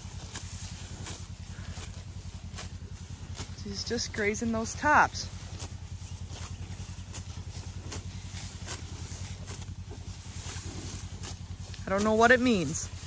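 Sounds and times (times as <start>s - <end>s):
cow tearing and chewing grass: 0.0s - 13.0s
steady low rumble: 0.0s - 13.0s.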